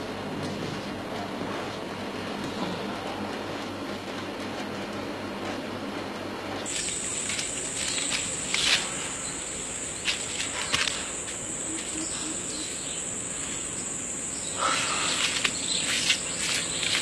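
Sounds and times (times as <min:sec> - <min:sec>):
insect high-pitched call: 0:06.7 - 0:17.0.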